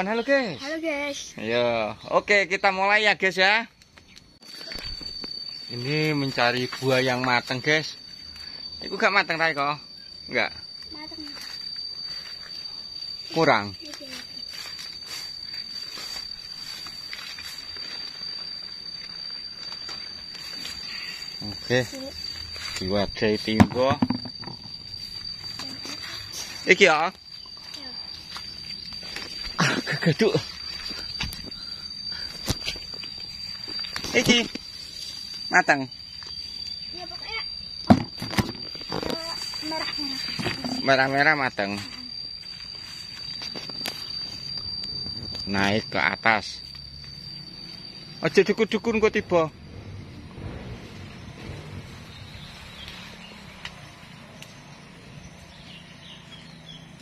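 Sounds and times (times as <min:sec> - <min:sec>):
steady high-pitched tone: 0:00.0 - 0:57.0
leaves and branches rustling: 0:10.6 - 0:23.6, 0:38.6 - 0:45.5.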